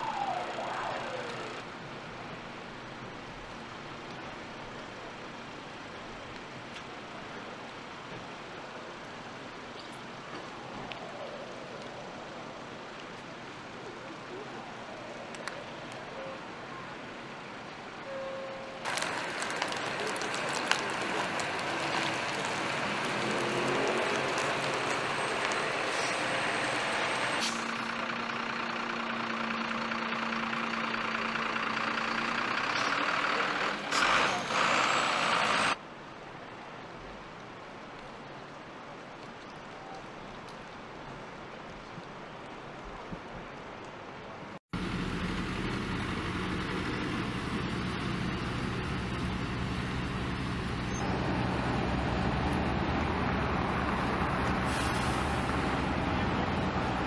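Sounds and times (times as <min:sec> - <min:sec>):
large vehicle engine roar: 0:00.0 - 0:01.8, 0:18.9 - 0:35.8, 0:44.8 - 0:57.0
street noise: 0:00.0 - 0:57.0.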